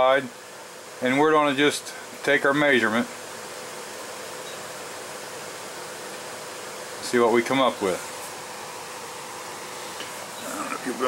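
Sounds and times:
background hiss: 0:00.0 - 0:11.0
faint hum: 0:00.0 - 0:11.0.

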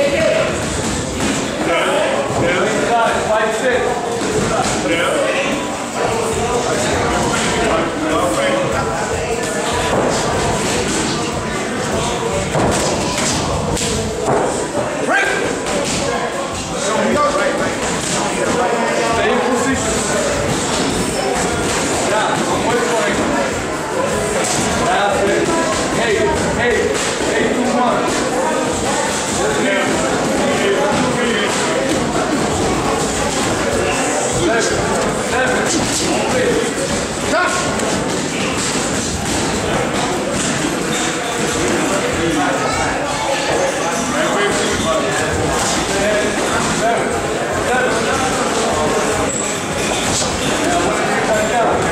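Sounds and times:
indistinct voices: 0:00.0 - 0:51.9.

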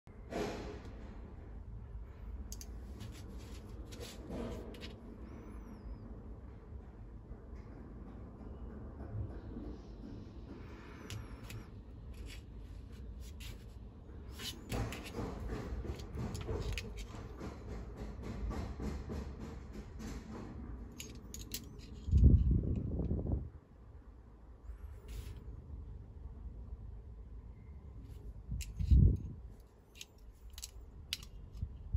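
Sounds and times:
light clicks and rustles of handling: 0:21.0 - 0:23.1, 0:28.1 - 0:31.9.

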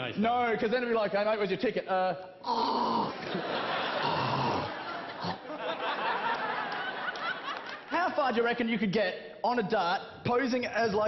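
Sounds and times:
audience laughing: 0:03.1 - 0:08.0.

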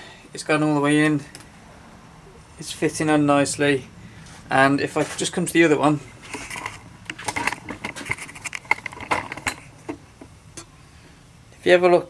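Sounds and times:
handling clicks and rattles: 0:06.2 - 0:10.3.

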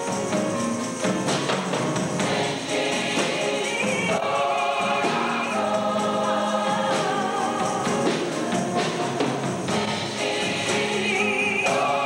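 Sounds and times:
choir singing: 0:02.0 - 0:12.0.

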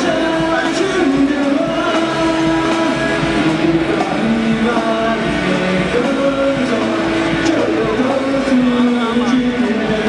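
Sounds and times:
bass and drums: 0:00.0 - 0:10.0
distorted electric guitar chords: 0:00.0 - 0:10.0
person singing: 0:00.0 - 0:10.0.

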